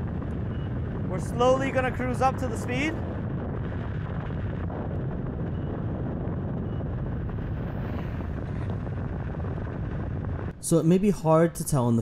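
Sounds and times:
road noise: 0.0 - 10.6
wind rush on microphone: 0.0 - 11.8.

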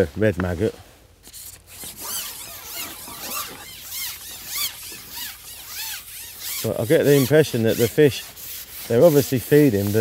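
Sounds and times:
fishing pole rubbing over roller: 1.2 - 10.0.

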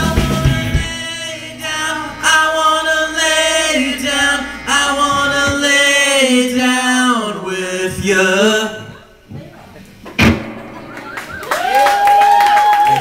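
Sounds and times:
full band playing: 0.0 - 6.0, 10.2 - 13.0
men singing a cappella: 0.0 - 9.0.

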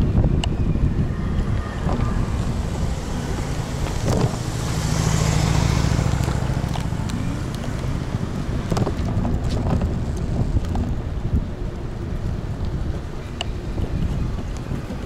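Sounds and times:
low hum: 0.0 - 14.2
low road rumble: 0.0 - 15.0
wind buffeting microphone: 0.0 - 15.0.

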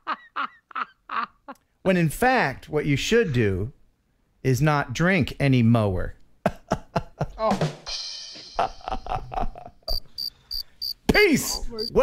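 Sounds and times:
crickets chirping: 9.9 - 12.0.

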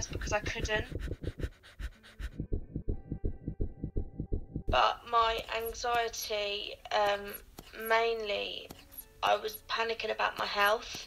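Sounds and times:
rapid panting breaths: 0.0 - 3.2
fast pounding heartbeat: 0.0 - 4.8.

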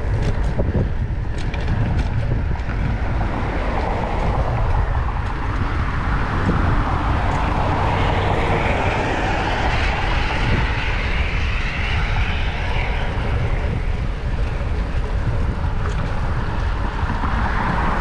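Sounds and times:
wind buffeting microphone: 0.0 - 18.0
motor vehicle passing: 1.9 - 18.0.

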